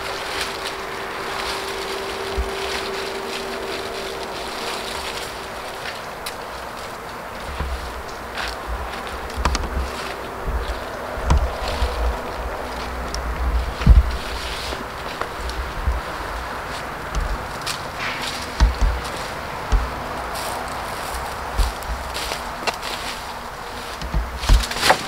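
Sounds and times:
steady hiss: 0.0s - 25.0s
wind buffeting microphone: 0.0s - 25.0s.

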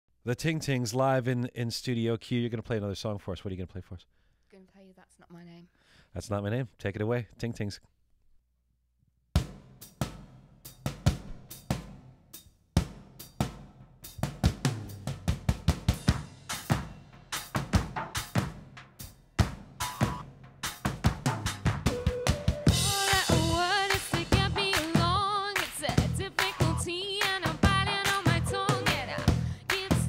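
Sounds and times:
drum kit beat: 9.4s - 30.0s
woman singing: 22.7s - 30.0s.

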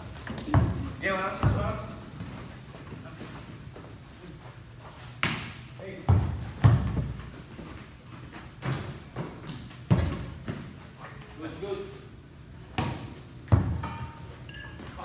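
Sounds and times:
basketball bouncing on gym floor: 0.2s - 2.4s, 5.2s - 7.4s, 8.6s - 10.7s, 12.7s - 14.1s.

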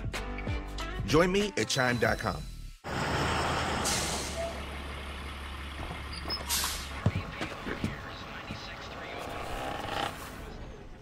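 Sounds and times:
bus engine idling: 2.9s - 11.0s
air brakes hissing: 3.6s - 4.6s, 6.2s - 7.0s.

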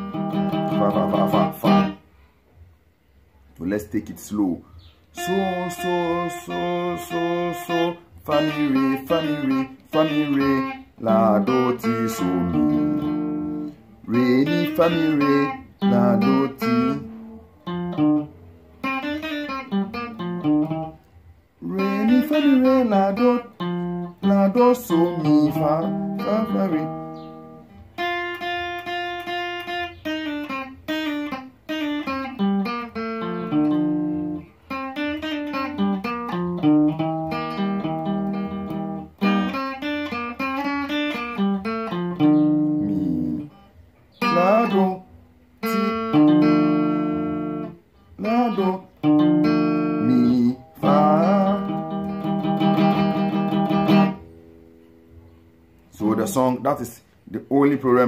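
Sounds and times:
electric guitar melody: 0.0s - 2.1s, 4.4s - 58.0s.

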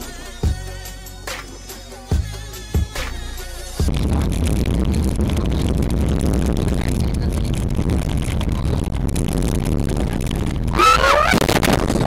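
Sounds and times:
music: 0.0s - 7.6s
car driving on snowy road: 4.1s - 12.0s.

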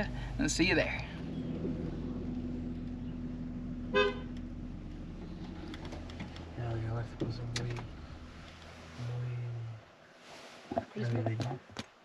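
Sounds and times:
vehicle drone inside cabin: 0.0s - 10.1s
car horn toot: 3.9s - 4.5s.

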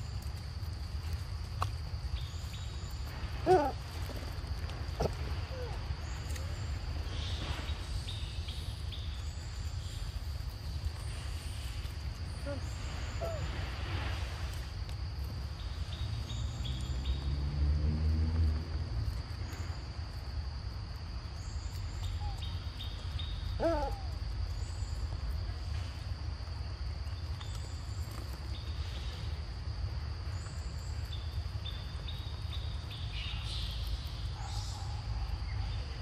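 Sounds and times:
insects droning: 0.0s - 36.0s
low hoot-like call: 3.4s - 3.8s, 12.3s - 13.6s, 23.6s - 24.3s.

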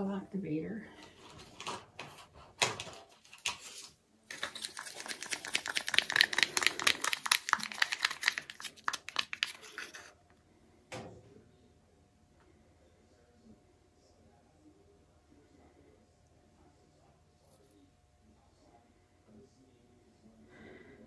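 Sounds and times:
rapid clicks: 4.3s - 9.9s
stir stick rattling in plastic tub: 4.3s - 10.1s.

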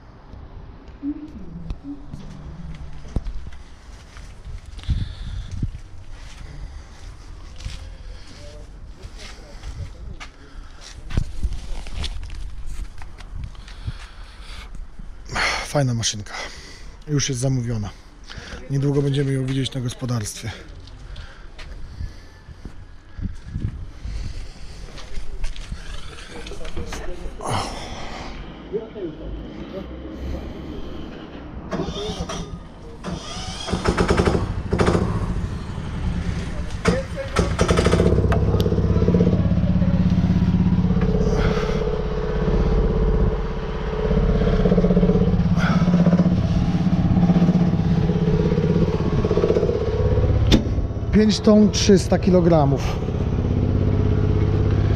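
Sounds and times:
engine starting and running: 24.1s - 27.6s, 28.2s - 54.9s.

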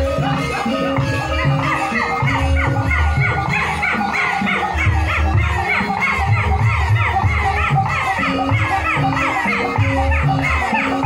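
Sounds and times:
gamelan ensemble playing: 0.0s - 11.0s
high wavering singing voices: 0.0s - 11.0s.

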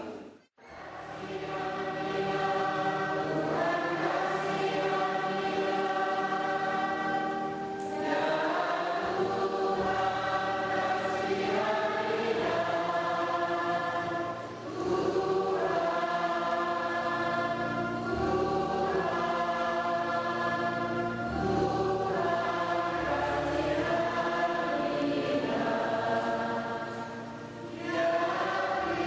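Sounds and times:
choir singing a hymn: 0.0s - 29.0s.

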